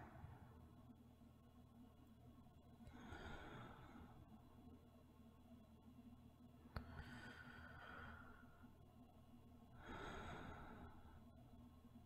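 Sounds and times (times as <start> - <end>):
woman breathing slowly: 0.0 - 0.7, 2.8 - 4.5, 6.7 - 8.8, 9.7 - 11.6.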